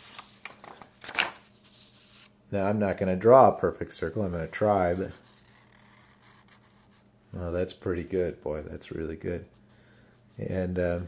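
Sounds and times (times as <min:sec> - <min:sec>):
marker scratching on paper: 0:04.0 - 0:07.1.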